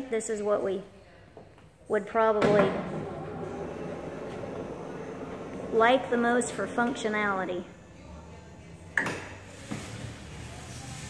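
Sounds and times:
wheelchair ramp motor running: 2.8s - 7.0s.

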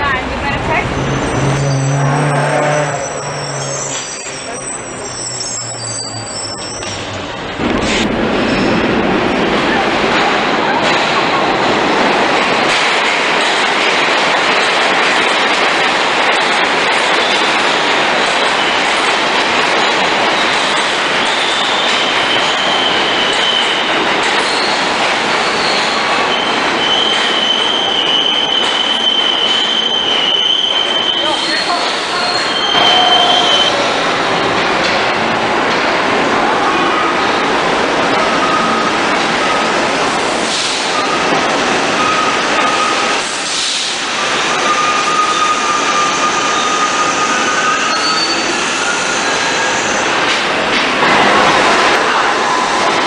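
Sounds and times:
subway train wheels rumbling: 0.0s - 53.0s
high-pitched wheel squeals: 1.0s - 7.2s, 21.2s - 33.9s, 44.3s - 50.0s.

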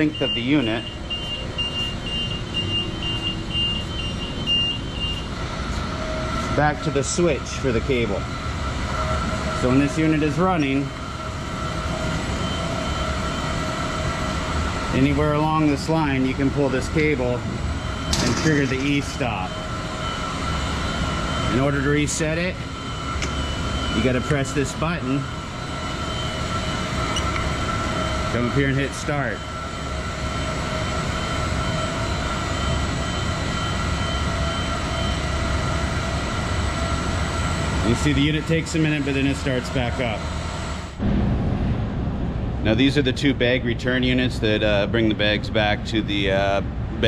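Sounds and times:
faint high beep: 0.0s - 5.3s, 26.0s - 27.5s
conveyor belt rumbling: 0.0s - 47.0s
faint constant whine: 0.0s - 47.0s.

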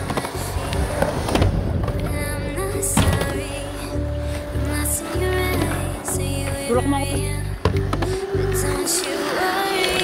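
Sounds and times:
pop music: 0.0s - 10.0s
skateboard wheels rolling: 0.0s - 10.0s.

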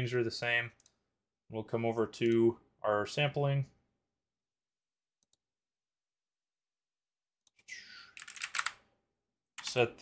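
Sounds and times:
keyboard typing: 7.5s - 8.8s.

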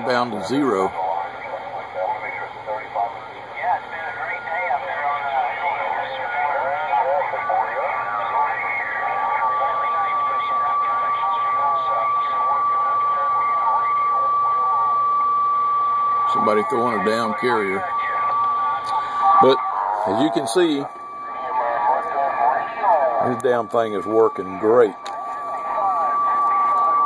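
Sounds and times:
voices from radio speaker: 0.0s - 27.0s
steady whistle tone: 4.2s - 27.0s.

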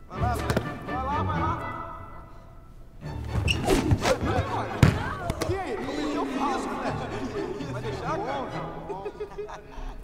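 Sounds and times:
film music: 0.0s - 9.6s
hands slapping a basketball: 0.4s - 0.8s, 3.7s - 5.6s
wordless voices of players: 3.4s - 10.0s.

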